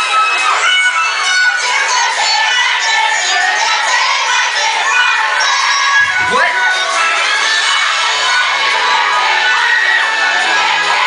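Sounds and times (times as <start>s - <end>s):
crowd cheering and screaming: 0.0s - 11.0s.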